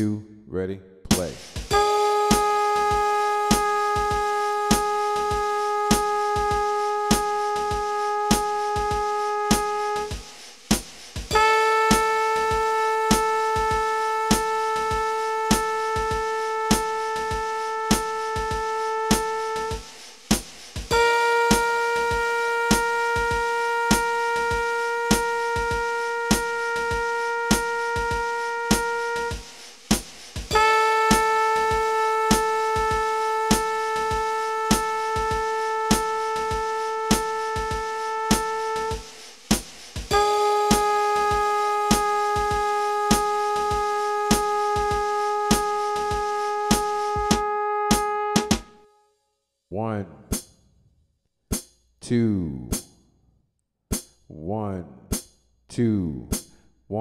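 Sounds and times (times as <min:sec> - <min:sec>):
held pitched tone: 0:40.1 - 0:43.6.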